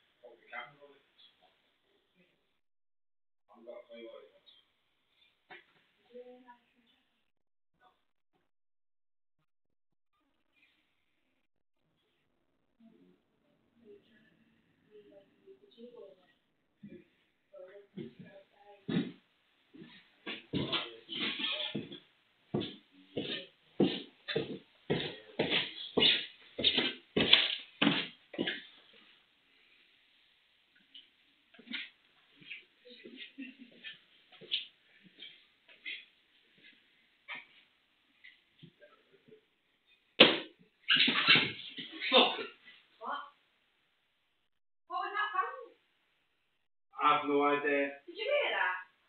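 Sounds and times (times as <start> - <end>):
footsteps across floor: 18.0 - 29.1, 30.9 - 37.6
footsteps on wooden stairs: 19.8 - 22.0, 22.6 - 28.7.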